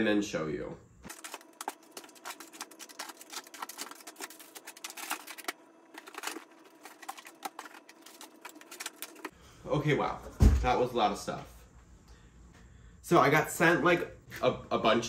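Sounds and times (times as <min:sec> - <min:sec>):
plastic packages clicking and rattling: 0:01.1 - 0:09.3.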